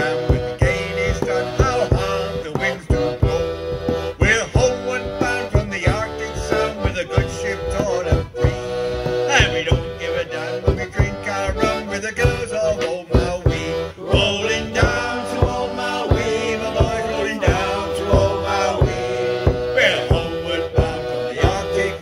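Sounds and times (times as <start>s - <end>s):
accordion melody: 0.0s - 22.0s
frame drum beat: 0.0s - 22.0s.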